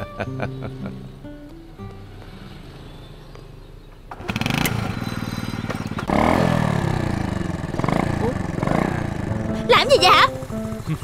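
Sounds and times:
motorbike engine starting and running: 2.1s - 11.0s.

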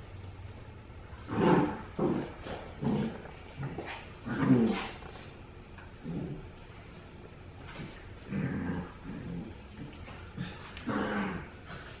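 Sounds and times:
puppies growling in play: 1.0s - 12.0s.

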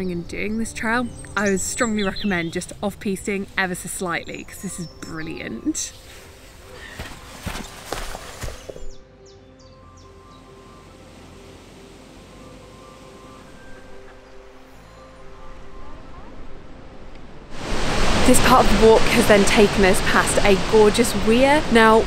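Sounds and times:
soft background music: 0.0s - 17.6s, 18.2s - 22.0s
footsteps on grass: 6.0s - 9.0s.

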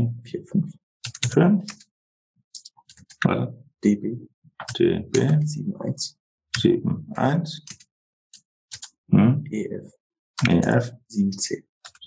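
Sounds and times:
computer keyboard typing: 1.0s - 1.8s, 7.6s - 7.8s, 8.7s - 8.9s
soft speech: 1.3s - 1.7s, 3.2s - 7.7s, 9.1s - 11.6s.

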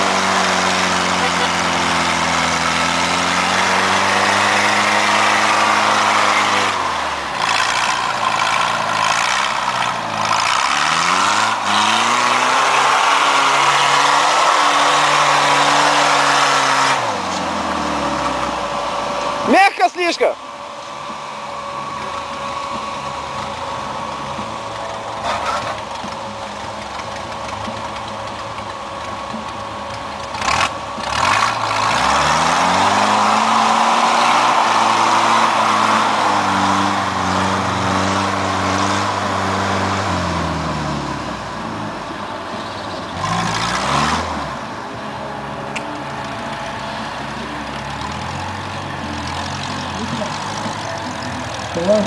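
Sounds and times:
jeep engine revving: 0.0s - 52.0s.

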